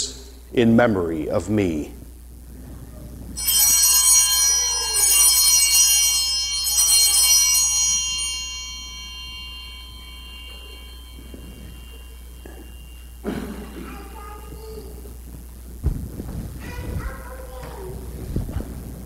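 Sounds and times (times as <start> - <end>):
altar bells ringing: 3.4 - 13.8.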